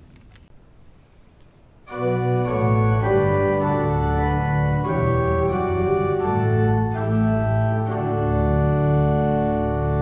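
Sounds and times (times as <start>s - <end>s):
organ playing sustained chords: 1.8s - 10.0s.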